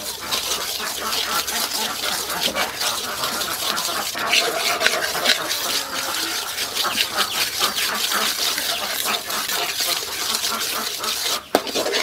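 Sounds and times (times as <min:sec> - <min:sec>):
bubbling sizzling syrup: 0:00.0 - 0:12.0
metal ladle scraping wok: 0:00.0 - 0:12.0.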